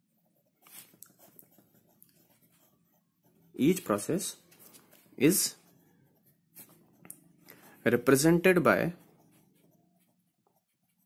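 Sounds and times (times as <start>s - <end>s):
pen scratching on paper: 0.0s - 11.0s.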